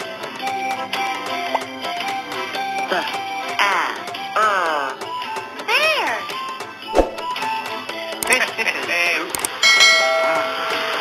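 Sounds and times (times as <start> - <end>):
bell-like ding: 9.6 - 10.9.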